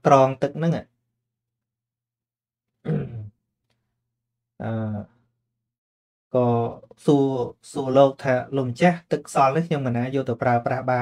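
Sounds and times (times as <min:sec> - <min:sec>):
man's low throaty vocal sound: 0:02.8 - 0:03.3.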